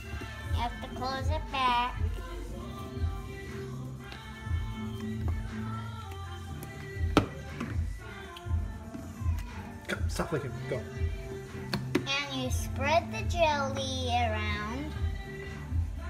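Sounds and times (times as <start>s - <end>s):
background music with low beats: 0.0s - 16.0s.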